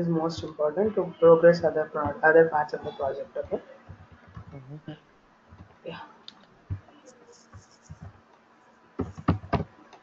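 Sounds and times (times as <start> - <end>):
faint voice: 2.1 - 5.1.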